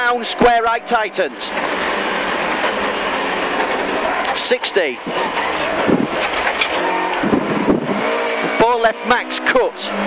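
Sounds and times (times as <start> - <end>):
car engine pulling hard: 0.0 - 10.0
road noise: 0.0 - 10.0.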